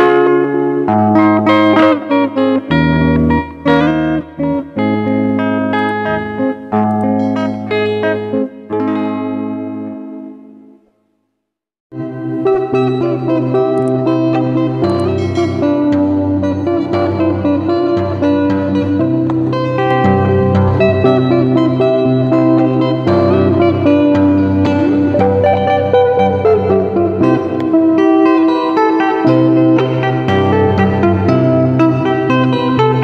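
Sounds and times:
fingerstyle electric guitar: 0:00.0 - 0:11.0, 0:11.9 - 0:33.0.

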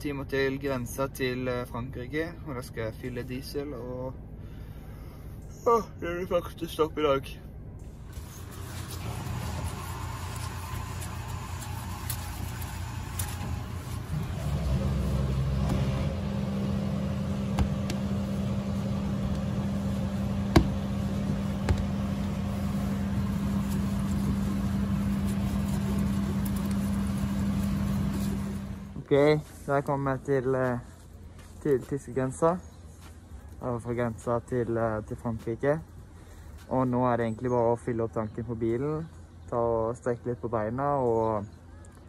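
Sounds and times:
low hum: 0:02.3 - 0:33.9
vehicle engine running: 0:07.5 - 0:29.6.

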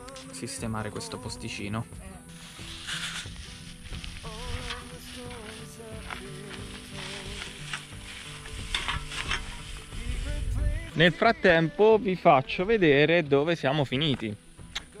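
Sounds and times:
crackling hiss: 0:00.0 - 0:12.2, 0:13.4 - 0:15.0
background music melody: 0:00.0 - 0:15.0.

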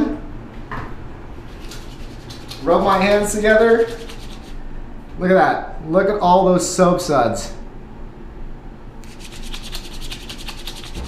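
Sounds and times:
wet hands rubbing together: 0:01.5 - 0:04.6, 0:09.0 - 0:11.0.

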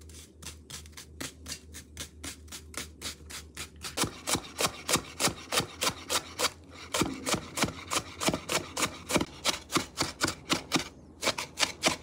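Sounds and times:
knife cutting leek on board: 0:00.0 - 0:12.0.

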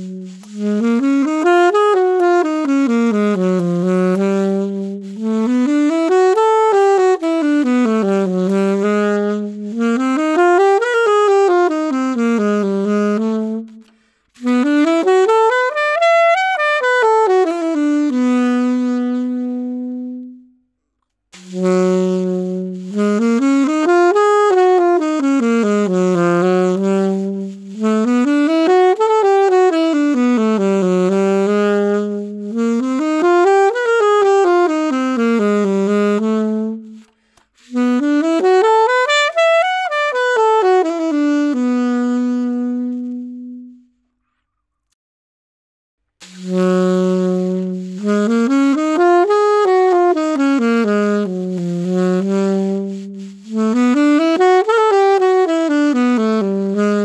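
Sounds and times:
alto saxophone playing soft phrase: 0:00.0 - 0:20.8, 0:21.4 - 0:44.1, 0:46.2 - 0:57.0.

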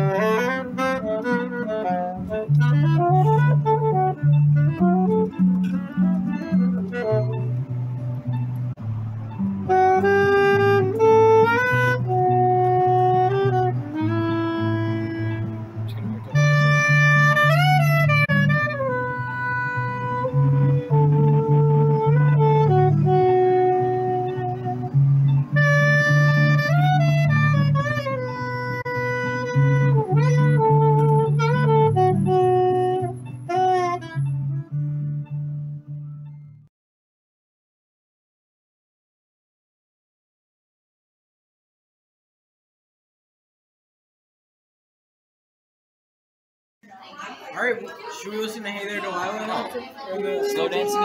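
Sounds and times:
backing track bass line: 0:00.0 - 0:36.6
saxophone slow melody: 0:00.0 - 0:36.7, 0:50.2 - 0:51.0.

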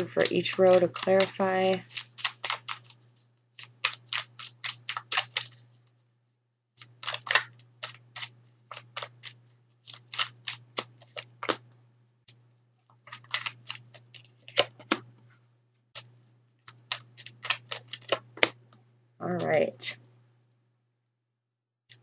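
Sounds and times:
cards shuffling clicks and snaps: 0:01.0 - 0:03.0, 0:03.6 - 0:05.7, 0:06.8 - 0:12.4, 0:13.0 - 0:15.3, 0:16.0 - 0:18.8.

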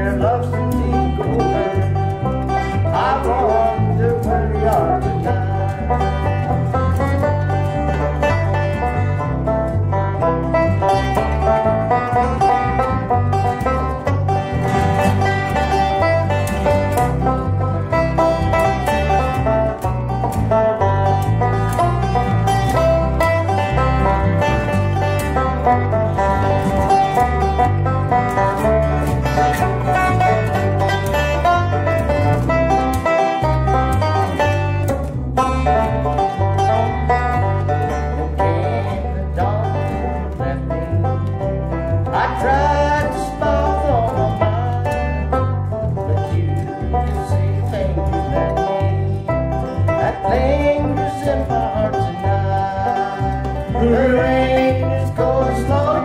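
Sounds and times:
acoustic guitars: 0:00.0 - 0:56.0
banjo: 0:00.0 - 0:56.0
plucked bass line: 0:00.0 - 0:56.0.

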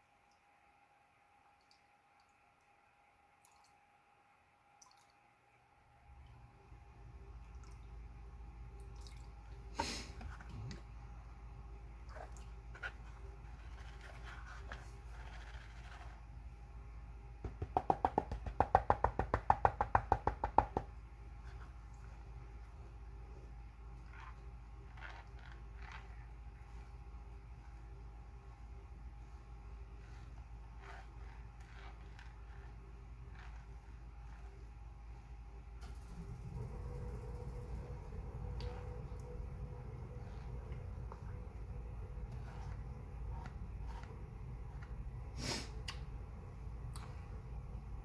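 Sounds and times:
steady low hum: 0:00.0 - 0:48.0
water sloshing and dripping: 0:07.4 - 0:08.0, 0:08.8 - 0:09.7.

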